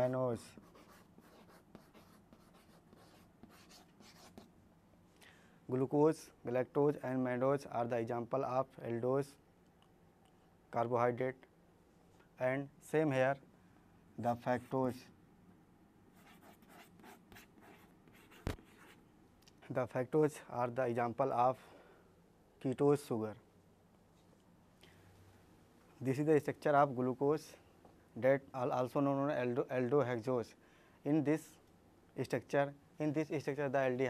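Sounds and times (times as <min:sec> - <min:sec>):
chalk scratching on chalkboard: 0:00.0 - 0:04.5, 0:16.2 - 0:19.0
chalk tap on chalkboard: 0:18.2 - 0:18.8.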